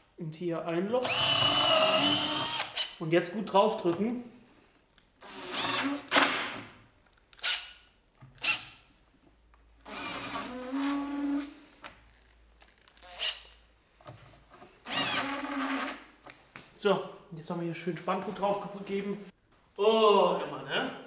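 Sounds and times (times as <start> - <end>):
cordless drill driving screws: 1.0 - 3.0, 5.2 - 6.4, 7.4 - 7.8, 8.4 - 8.8, 9.8 - 11.5, 12.9 - 13.6, 14.8 - 16.0.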